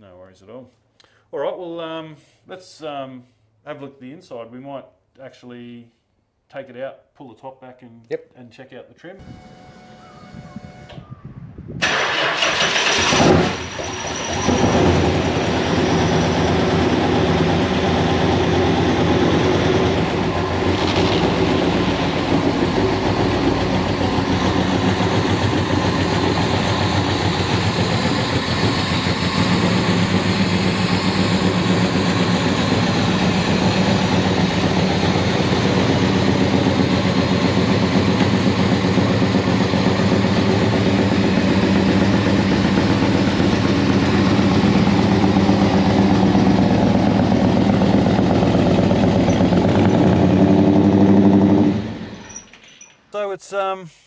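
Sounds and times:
car engine idling: 0:11.8 - 0:52.0.

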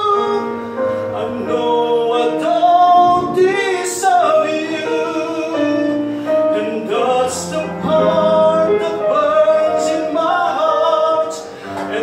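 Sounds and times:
man singing worship song: 0:00.0 - 0:12.0.

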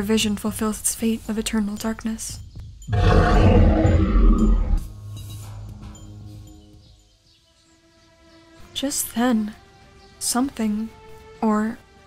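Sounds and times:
soft background music: 0:00.0 - 0:02.9, 0:04.8 - 0:12.0
monster roar: 0:02.9 - 0:04.9.

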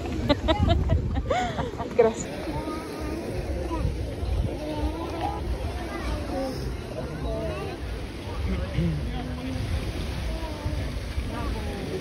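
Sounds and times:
faint crowd chatter: 0:00.0 - 0:12.0
wind buffeting microphone: 0:00.0 - 0:12.0.

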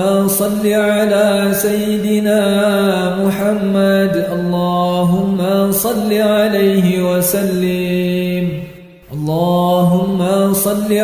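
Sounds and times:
unaccompanied voice chanting: 0:00.0 - 0:11.0.

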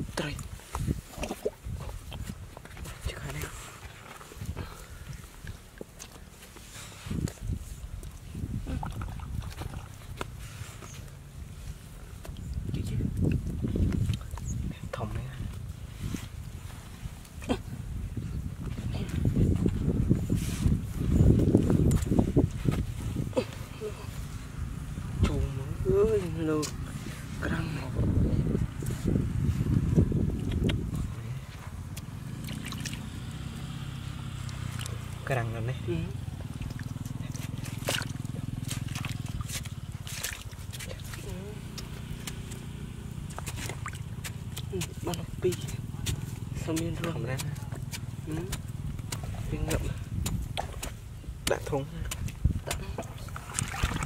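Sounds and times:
wet mud being dug: 0:00.0 - 0:54.0
metal pole scraping mud: 0:37.0 - 0:54.0.

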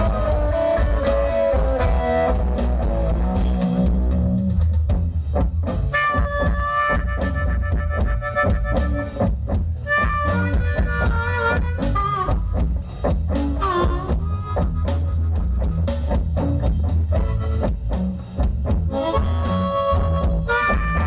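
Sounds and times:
harmonica bending long notes: 0:00.0 - 0:04.5, 0:05.6 - 0:21.0
blues band playing: 0:00.0 - 0:21.0.

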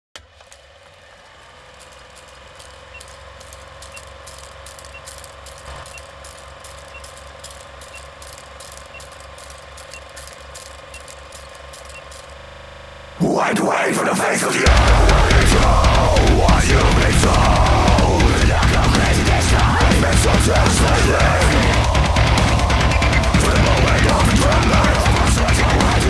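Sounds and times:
film projector rattling: 0:00.2 - 0:12.5
steady hum: 0:03.4 - 0:26.0.

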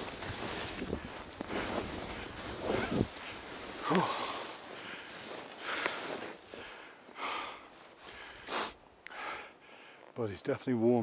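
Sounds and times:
skis scraping over snow: 0:00.0 - 0:06.8.

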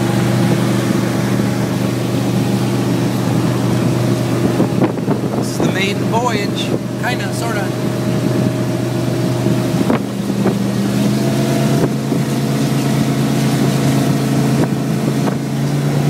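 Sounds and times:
powerboat engine running: 0:00.0 - 0:16.0
wind on microphone: 0:00.0 - 0:16.0.

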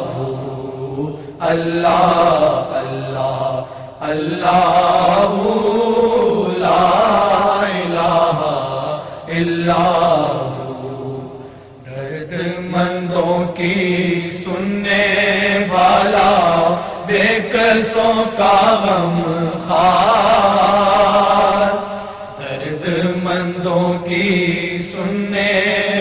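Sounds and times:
devotional chanting: 0:00.0 - 0:26.0.

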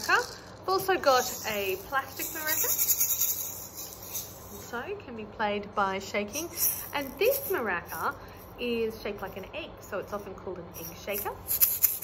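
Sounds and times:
plastic maraca rattling: 0:00.0 - 0:04.8, 0:06.3 - 0:09.4, 0:10.8 - 0:12.0.

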